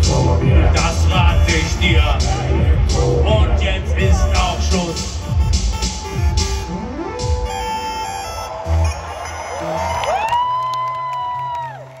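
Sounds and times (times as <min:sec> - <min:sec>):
held synth notes: 0:00.0 - 0:10.0.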